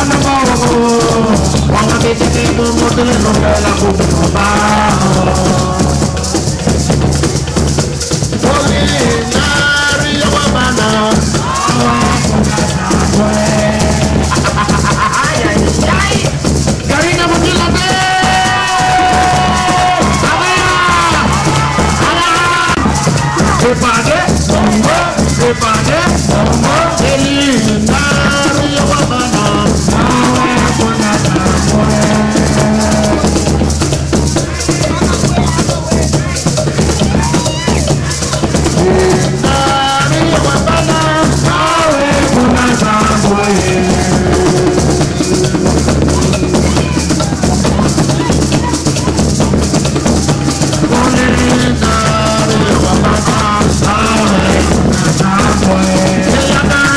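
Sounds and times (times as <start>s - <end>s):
man singing into a microphone: 0.0s - 6.6s, 8.4s - 16.3s, 16.9s - 33.8s, 34.5s - 48.4s, 50.6s - 56.9s
drums: 0.0s - 56.9s
maracas shaken: 0.0s - 56.9s.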